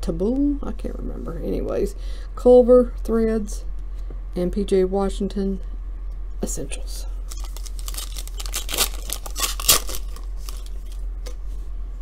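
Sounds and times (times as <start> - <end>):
foil pack tearing and crinkling: 7.3 - 11.1.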